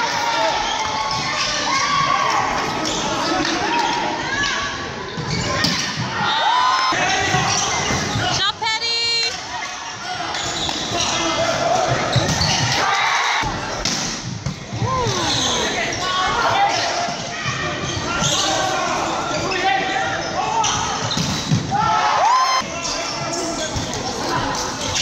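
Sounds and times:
shoes squeaking on court: 5.1 - 6.0, 10.2 - 12.8, 15.0 - 16.1, 16.7 - 21.6.

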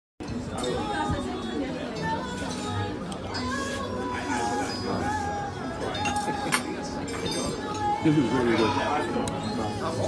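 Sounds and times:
people chattering: 0.2 - 10.0.

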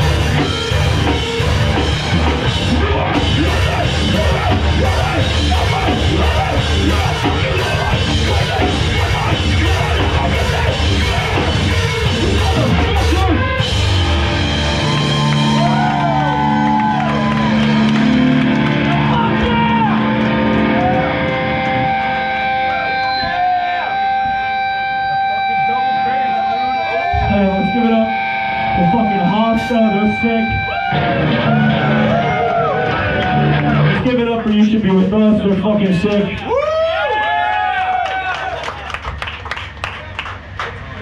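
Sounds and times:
guitar feedback tone: 0.0 - 34.2
electric guitars ringing with feedback: 0.0 - 38.6
full band crash: 0.0 - 41.0.

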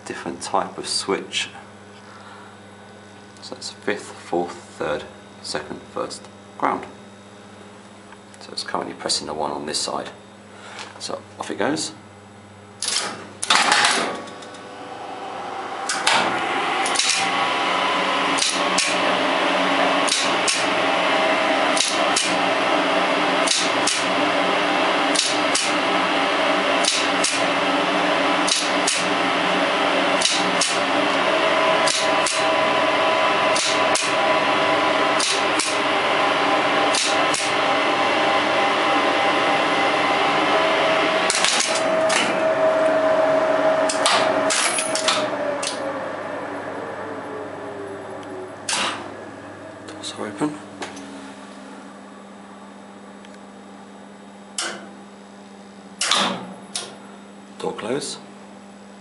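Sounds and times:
lift machine humming: 0.0 - 59.0
relay clicks: 15.8 - 17.3, 18.4 - 19.0, 20.0 - 20.7, 26.8 - 27.4, 28.4 - 29.1, 31.8 - 32.5, 35.2 - 35.8, 36.9 - 37.5.

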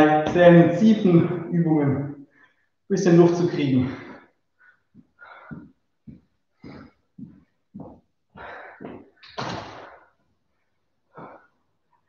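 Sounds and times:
man breathing hard: 3.8 - 11.8.

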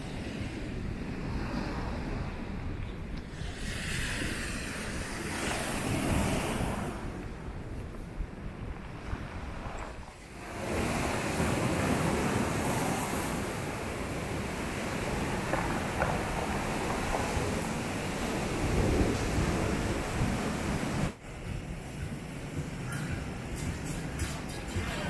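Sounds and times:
sea surf breaking on beach: 0.0 - 23.6.

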